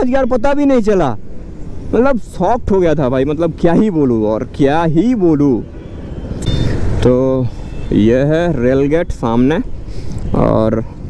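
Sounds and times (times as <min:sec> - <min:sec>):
man speaking: 0:00.0 - 0:01.3, 0:01.9 - 0:05.7, 0:07.0 - 0:11.0.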